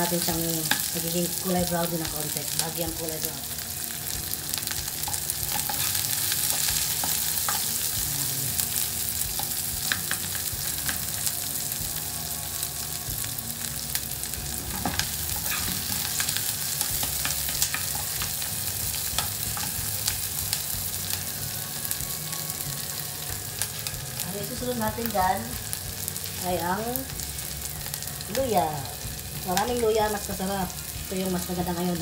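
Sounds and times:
garlic and onions sizzling in oil: 0.0s - 32.0s.

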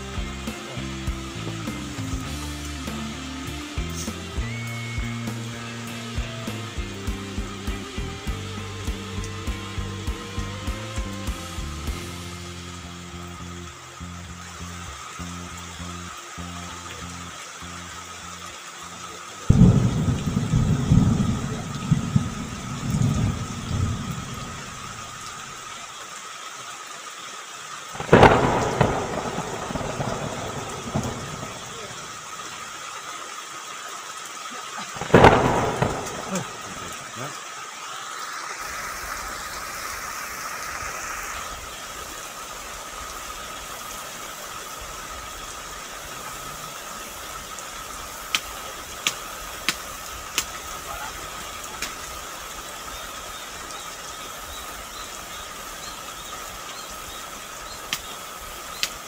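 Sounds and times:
heavy rain hissing: 0.0s - 59.0s
sharp thunderclaps: 19.5s - 25.0s, 28.0s - 32.2s, 35.0s - 37.0s
rolling thunder rumble: 19.5s - 25.4s, 28.0s - 32.4s, 35.0s - 37.2s.

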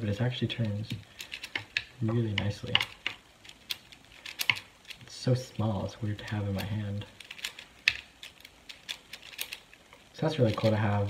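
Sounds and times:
plastic puzzle cube clicking: 0.5s - 5.1s, 6.2s - 10.8s.

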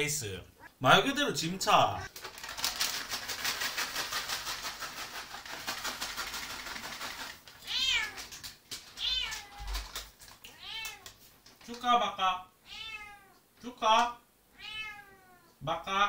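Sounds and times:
crinkling rustle with clicks: 2.1s - 11.9s
cat meowing: 7.6s - 8.2s, 9.0s - 9.8s, 10.5s - 11.1s, 12.6s - 13.4s, 14.6s - 15.5s.

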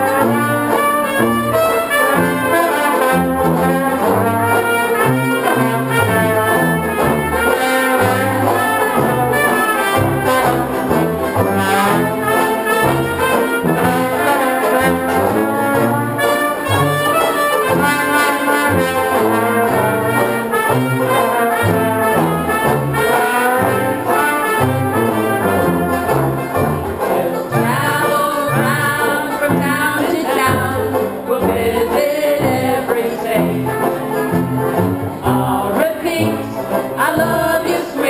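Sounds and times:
low rhythmic bass line: 0.0s - 37.7s
brass melody: 0.0s - 38.0s
strummed banjos: 0.0s - 38.0s.

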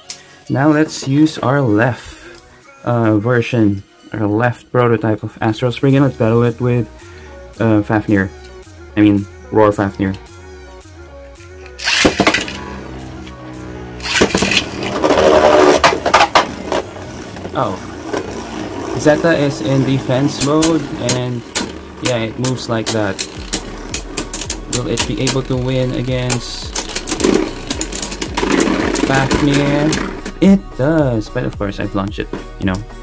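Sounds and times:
background music: 0.0s - 33.0s
spinning tops clattering: 11.8s - 12.6s, 14.0s - 17.5s, 18.1s - 30.4s
ripcord launch ripping: 11.8s - 12.7s, 14.0s - 19.2s, 26.2s - 30.4s.

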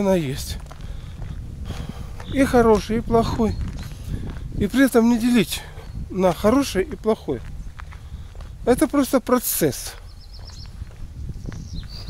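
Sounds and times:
steady low rumble: 0.0s - 9.3s
songbird trilling: 2.2s - 2.7s, 3.3s - 4.1s, 5.6s - 6.8s, 10.0s - 10.9s, 11.6s - 12.0s.

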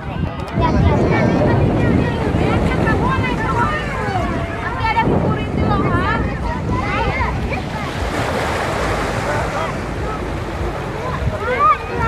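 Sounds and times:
chatter of many voices: 0.0s - 12.0s
wind buffeting microphone: 0.0s - 12.0s.

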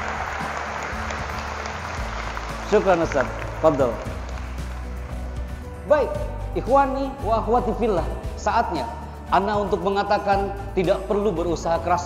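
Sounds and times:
crowd applauding: 0.0s - 5.7s
background music: 0.0s - 12.0s.

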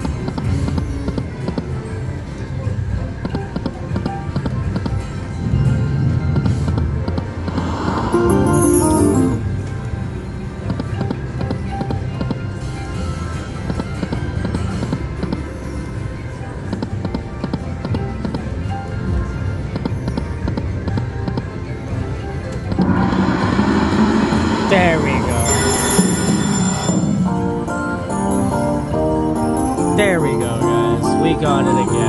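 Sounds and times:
slot machine music and effects: 5.0s - 10.1s, 22.8s - 32.0s
falling tone sweep: 7.4s - 9.4s
bright chiming: 8.1s - 9.5s, 24.1s - 28.8s.

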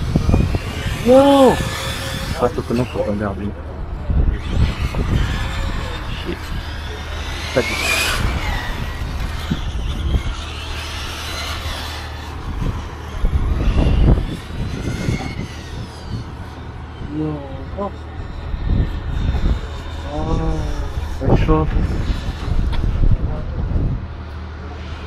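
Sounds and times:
electric toy car motor whining: 0.0s - 23.2s
wind rumble on microphone: 0.0s - 25.0s.

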